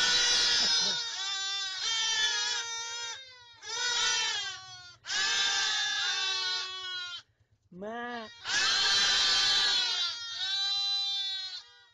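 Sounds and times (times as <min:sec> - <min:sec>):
sheep bleating: 0:00.0 - 0:07.3, 0:08.1 - 0:11.9.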